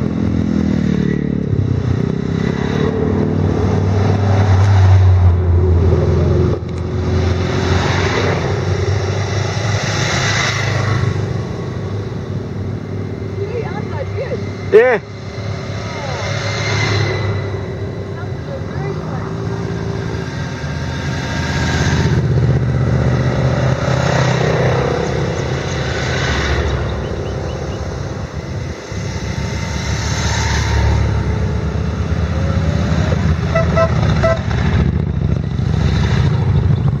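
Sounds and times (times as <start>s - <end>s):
motorcycles riding past: 0.0s - 37.0s.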